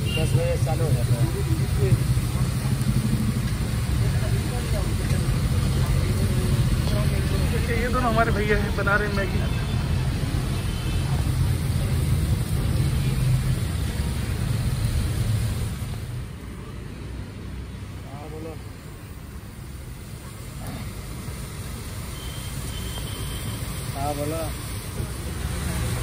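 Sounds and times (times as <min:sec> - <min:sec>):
low rumble of road traffic: 0:00.0 - 0:26.0.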